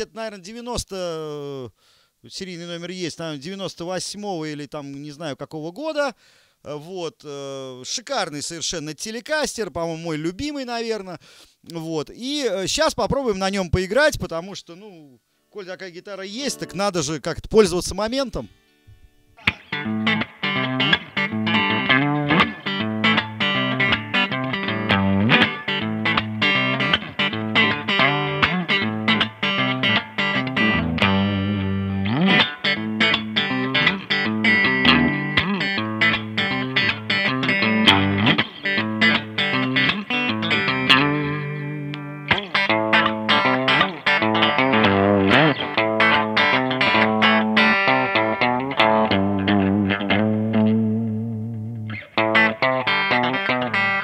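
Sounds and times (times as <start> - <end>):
electric guitar picked notes: 16.3 - 17.0, 18.4 - 54.0.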